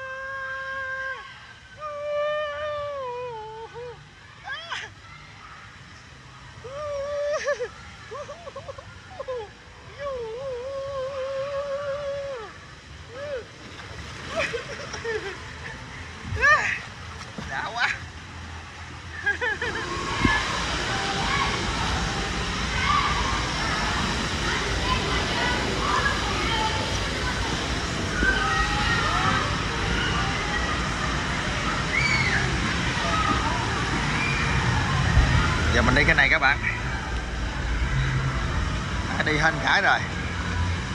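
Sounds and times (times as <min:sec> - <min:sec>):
faint voices: 0:00.0 - 0:40.9
rush of running water: 0:00.0 - 0:40.9
water swishing in slide: 0:00.0 - 0:40.9.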